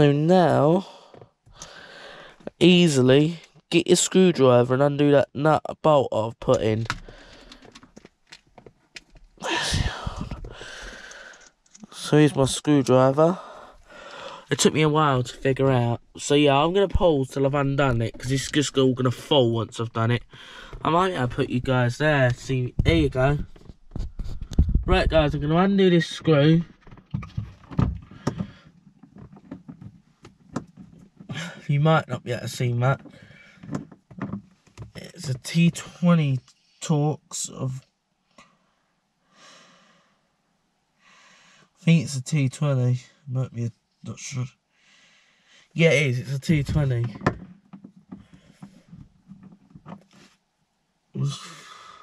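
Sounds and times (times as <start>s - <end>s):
low thumps: 9.7s - 10.9s
small clicks of handling parts: 11.0s - 11.9s.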